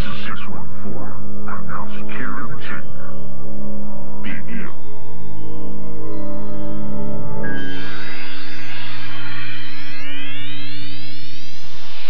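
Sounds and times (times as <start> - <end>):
low synthesizer drone: 0.0 - 12.0
rising electronic sweep: 6.0 - 12.0.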